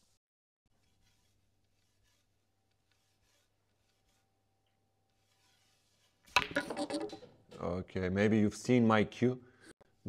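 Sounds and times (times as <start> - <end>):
ball striking ball: 6.4 - 7.2
cue striking cue ball: 6.4 - 7.2.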